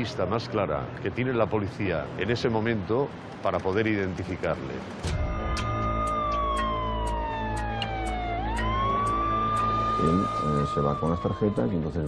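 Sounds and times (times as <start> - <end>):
traffic rumble: 0.0 - 12.0
siren wailing: 5.1 - 12.0.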